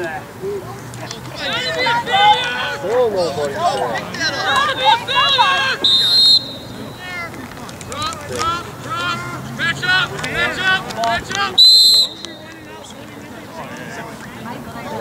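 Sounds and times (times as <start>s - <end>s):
indistinct shouting voices: 1.2s - 14.2s
referee whistle blasts: 5.7s - 7.2s, 11.6s - 12.6s.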